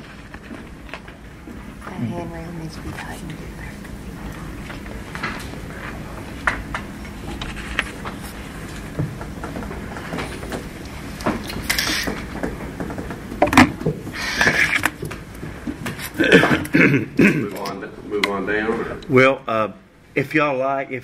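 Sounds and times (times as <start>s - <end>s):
small knocks: 8.8s - 16.0s.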